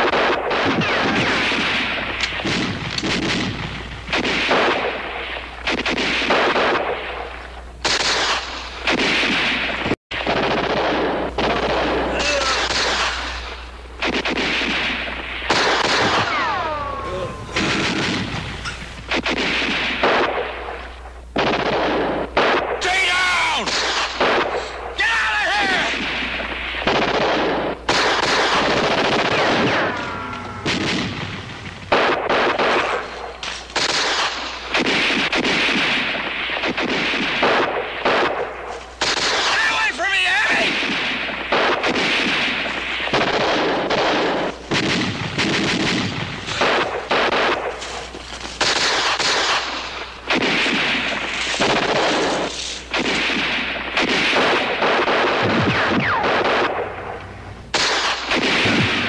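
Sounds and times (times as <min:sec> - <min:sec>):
rifle shots: 0:00.0 - 0:59.0
machine-gun bursts: 0:07.8 - 0:16.6, 0:17.6 - 0:20.5, 0:25.6 - 0:56.8.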